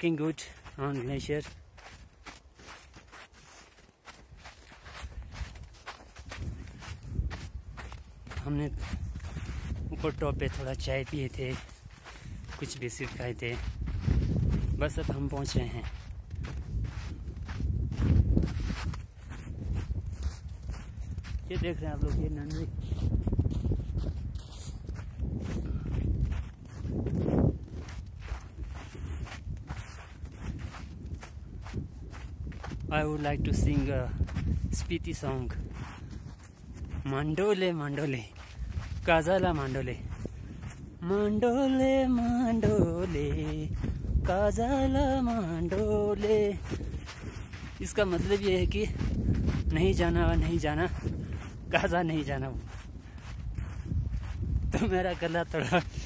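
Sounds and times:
man talking: 0.0s - 1.6s, 8.3s - 9.0s, 9.9s - 11.7s, 12.5s - 13.7s, 14.7s - 16.0s, 21.4s - 22.8s, 32.9s - 35.6s, 37.0s - 38.4s, 39.0s - 40.1s, 47.8s - 49.1s, 49.7s - 51.0s, 51.7s - 52.7s, 54.7s - 55.9s
footsteps crunching on snow: 0.0s - 56.0s.

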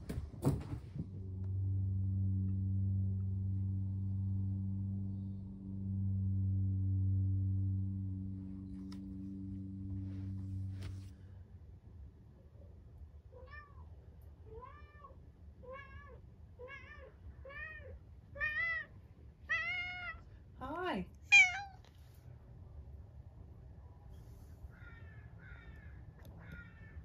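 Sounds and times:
cat meowing: 14.5s - 18.9s, 19.5s - 20.2s, 21.2s - 21.9s, 24.8s - 27.0s.

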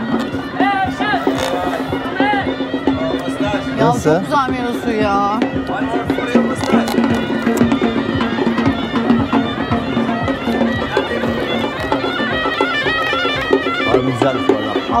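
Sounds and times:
hand drum beats: 0.0s - 15.0s
reed pipe melody: 0.0s - 15.0s.

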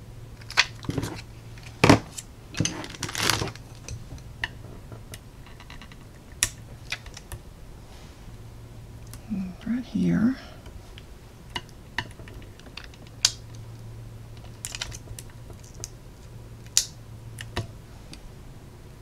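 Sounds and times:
low electrical hum: 0.0s - 19.0s
woman humming: 9.2s - 10.6s.

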